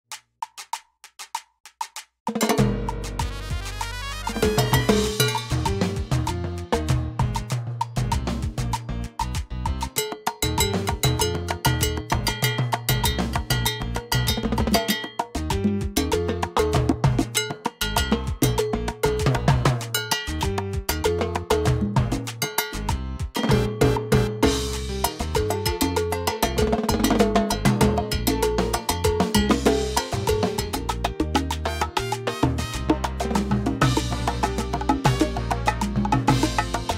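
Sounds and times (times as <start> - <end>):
salsa music with bass line: 2.3 - 36.9
timbales played with sticks: 9.8 - 31.9, 32.9 - 36.9.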